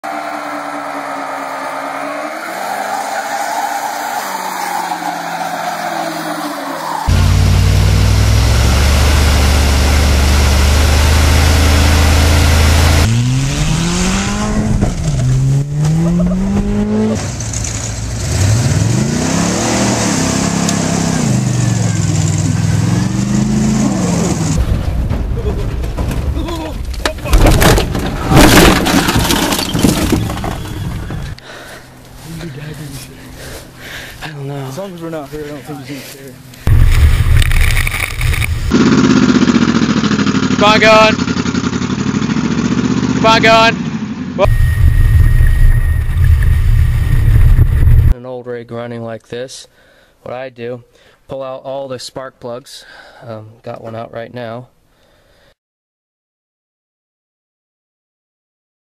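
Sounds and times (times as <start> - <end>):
car engine revving: 0.0 - 24.6, 36.7 - 48.2
sharp crashing impacts: 24.5 - 31.2, 36.7 - 40.4.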